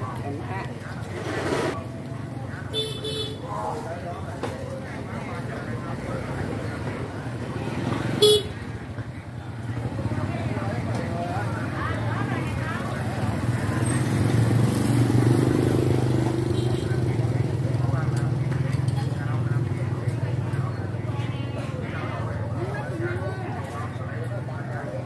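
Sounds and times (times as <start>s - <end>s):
motorbike engines passing: 0.0s - 25.0s
voices chattering: 0.0s - 25.0s
vehicle horn beep: 8.2s - 8.5s.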